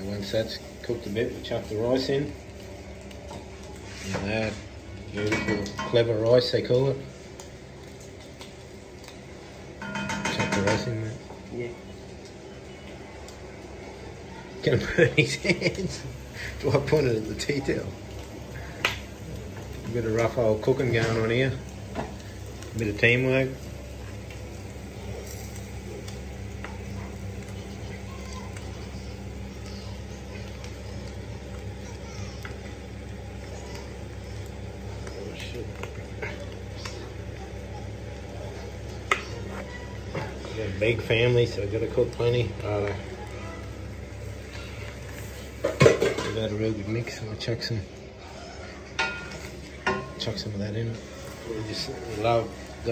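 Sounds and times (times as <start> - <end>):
steady low hum: 0.0 - 52.9
pot clacking: 9.8 - 10.9.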